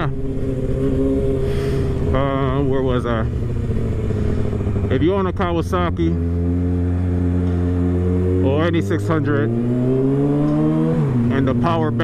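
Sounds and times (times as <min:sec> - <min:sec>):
motorcycle engine cruising: 0:00.0 - 0:12.0
wind and road rumble: 0:00.0 - 0:12.0.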